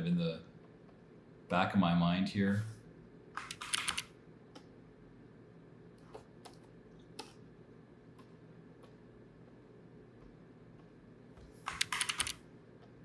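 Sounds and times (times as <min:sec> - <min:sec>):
computer keyboard keys clicking: 0:03.4 - 0:04.1, 0:11.6 - 0:12.4.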